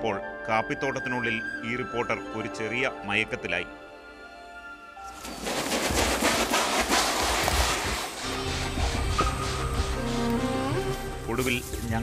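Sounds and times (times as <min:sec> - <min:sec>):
bird wingbeats whooshing: 0:05.1 - 0:10.3.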